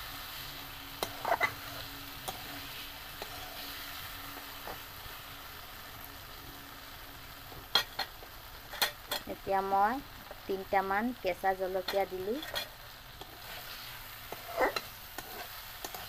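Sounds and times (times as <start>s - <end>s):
spatula scraping a wok: 0.0s - 5.2s, 7.6s - 9.2s, 11.8s - 16.0s
potatoes sizzling in a wok: 0.0s - 16.0s
spatula clicking on a pan: 14.3s - 16.0s.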